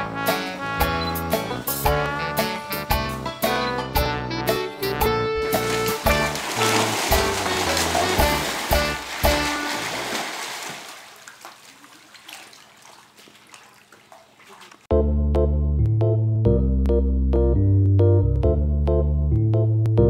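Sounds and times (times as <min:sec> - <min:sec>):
music with a steady beat: 0:00.0 - 0:06.4
water splashing and churning: 0:05.4 - 0:14.9.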